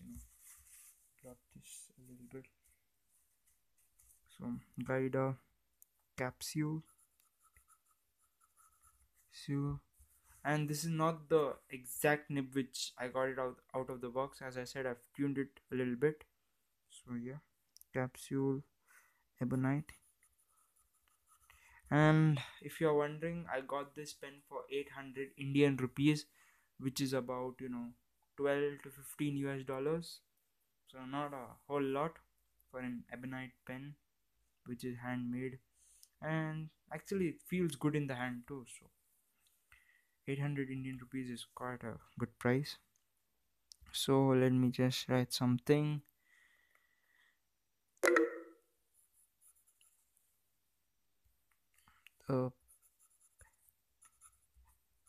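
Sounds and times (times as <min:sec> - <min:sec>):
pen nib scratching on paper: 0:06.8 - 0:09.3.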